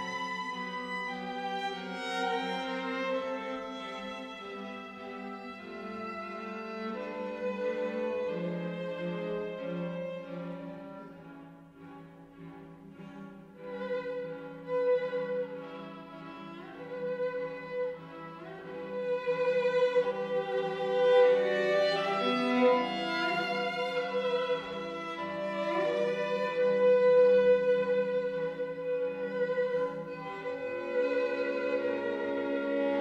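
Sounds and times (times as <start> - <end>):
string quartet sustained chords: 0.0 - 33.0.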